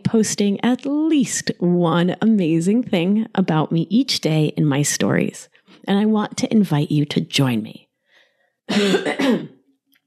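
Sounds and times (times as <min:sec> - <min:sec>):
woman clearing her throat: 0:08.7 - 0:09.6.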